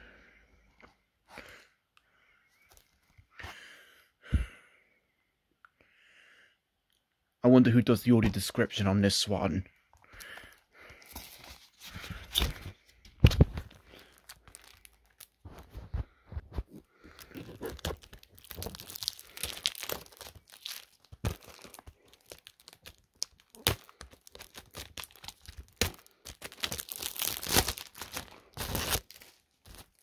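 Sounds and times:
plastic packaging tearing and crinkling: 11.2 - 15.6, 17.1 - 30.0.

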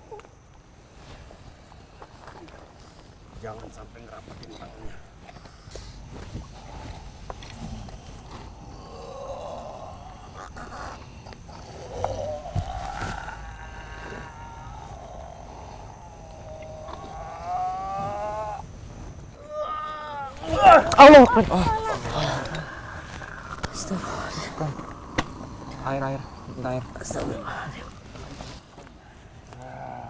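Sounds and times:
man moaning and groaning: 7.8 - 18.6, 19.4 - 27.9, 29.5 - 30.0.

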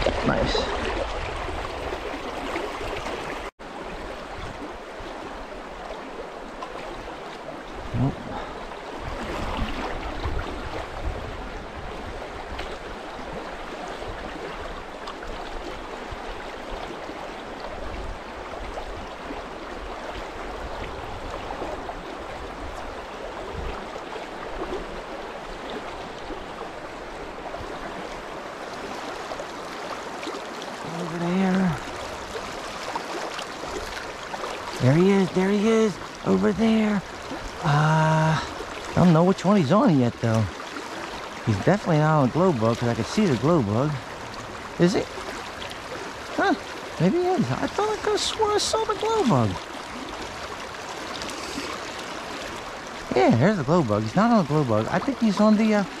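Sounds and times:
creek water rushing over riffle: 0.0 - 56.0.

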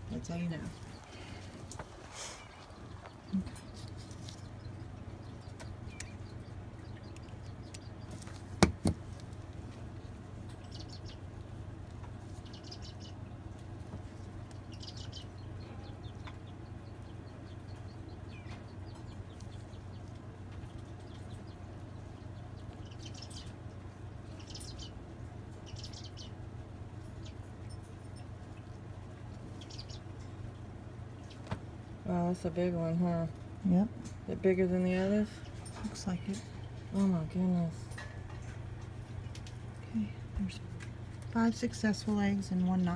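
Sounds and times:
steady low hum: 0.0 - 42.9.

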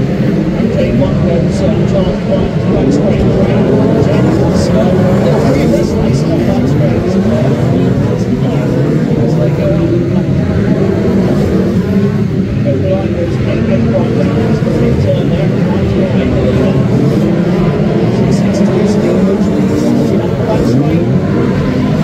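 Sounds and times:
racing car engines: 0.0 - 22.0.

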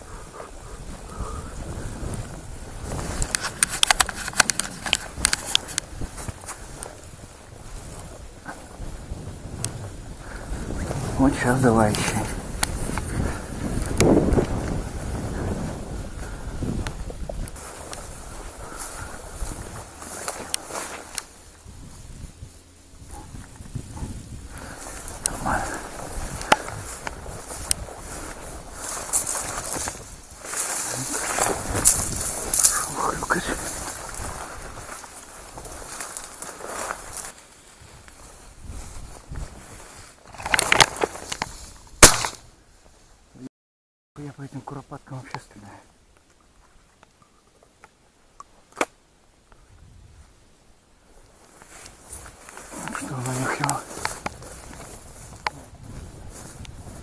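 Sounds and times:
wind buffeting microphone: 0.0 - 42.2, 49.6 - 50.4, 51.7 - 57.0
footsteps in dry grass: 0.0 - 43.3, 46.0 - 57.0
shotgun shot: 42.0 - 42.4.

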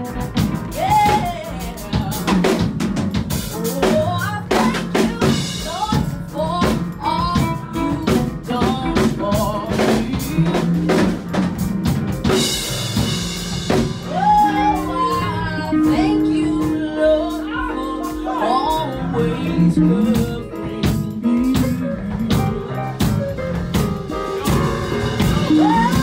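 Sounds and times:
steady drum beat: 0.0 - 26.0
woman singing: 0.1 - 2.4, 3.5 - 11.2, 14.1 - 22.8, 25.1 - 26.0.

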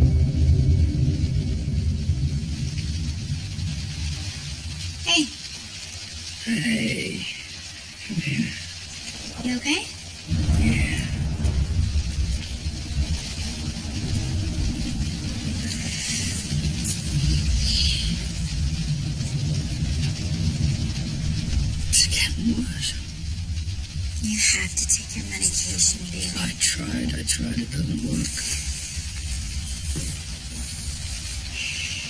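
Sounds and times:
low ominous rumble: 0.0 - 32.0.

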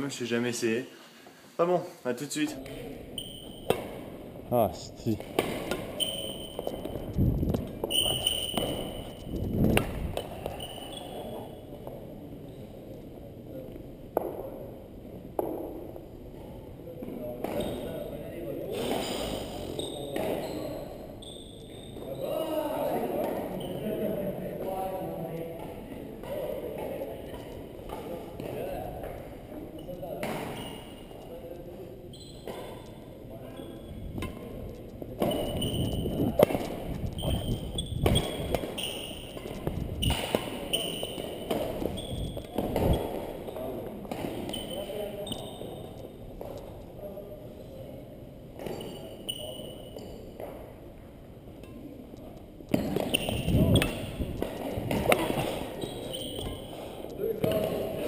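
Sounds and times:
sports shoes squeaking: 2.6 - 4.0, 4.6 - 11.8, 17.4 - 18.2, 18.8 - 22.6, 23.4 - 24.0, 27.2 - 46.8, 48.6 - 50.6, 52.7 - 57.9
racquet hits and footsteps: 2.7 - 4.2, 5.2 - 12.0, 33.8 - 46.8, 52.7 - 57.9.

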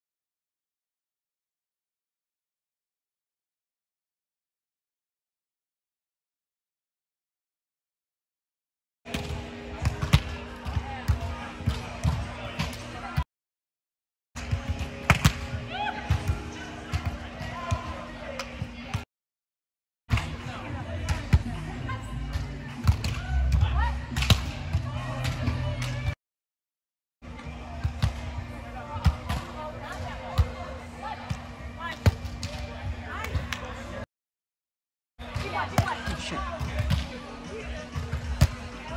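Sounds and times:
players' voices: 9.1 - 13.2, 14.4 - 19.0, 20.1 - 26.2, 27.2 - 34.1, 35.2 - 38.9.

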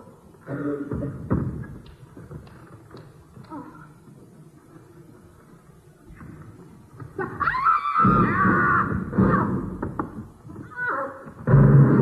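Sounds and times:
heavy thuds and rumbling: 0.9 - 2.5, 8.0 - 10.6, 11.4 - 12.0.

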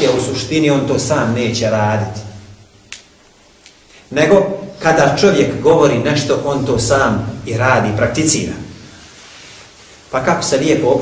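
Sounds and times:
lecturer speaking: 0.0 - 2.6, 4.0 - 9.2, 10.0 - 11.0.

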